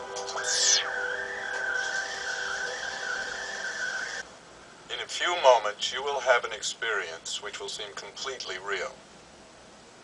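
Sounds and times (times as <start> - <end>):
electronic downward sweep: 0.0 - 4.3
high wavering electronic whine: 0.0 - 4.4.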